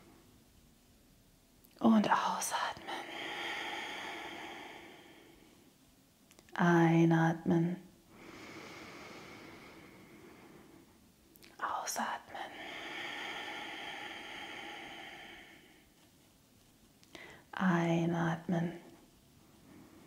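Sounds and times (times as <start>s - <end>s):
woman speaking: 1.8s - 3.0s, 6.6s - 7.8s, 17.6s - 18.8s
woman breathing into microphone: 3.0s - 5.4s, 12.4s - 15.9s, 17.1s - 17.5s.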